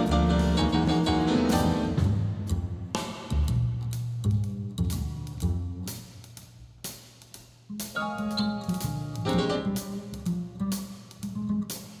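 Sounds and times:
double bass plucking: 0.0 - 6.3, 7.7 - 12.0
drum kit strikes: 0.0 - 12.0.

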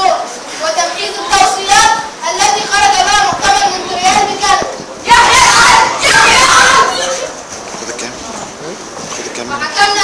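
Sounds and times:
young voices shouting in unison: 1.0 - 7.4.

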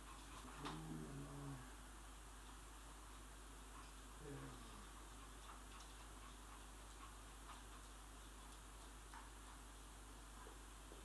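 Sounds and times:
low voice-like sound: 0.6 - 1.8, 4.2 - 4.8
puppy claws clicking on floor: 5.0 - 9.6.

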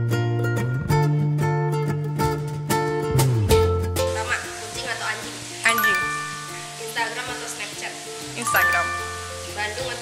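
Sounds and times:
background music with sustained notes: 5.6 - 10.0
bright chime ding: 5.7 - 7.0, 8.4 - 9.6
person speaking: 5.7 - 7.2, 8.4 - 9.8.

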